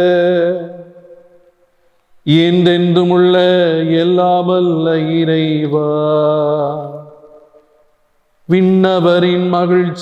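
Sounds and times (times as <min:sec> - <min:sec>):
man chanting prayer through microphone: 0:00.0 - 0:01.2, 0:02.3 - 0:07.4, 0:08.5 - 0:10.0.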